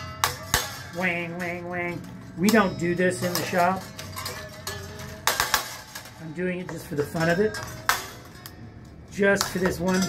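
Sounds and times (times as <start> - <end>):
metallic ringing of strings: 0.0 - 10.0.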